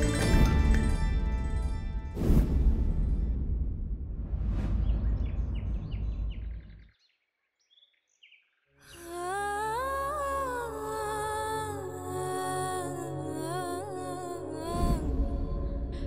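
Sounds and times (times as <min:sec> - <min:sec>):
low rumbling swell with whoosh: 0:02.1 - 0:06.8
wordless humming voice melody: 0:08.9 - 0:16.0.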